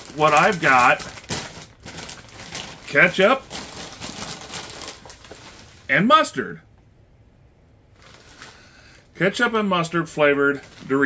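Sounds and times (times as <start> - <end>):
foil chip bag crinkling: 0.0 - 5.9, 7.9 - 9.1, 10.3 - 11.0.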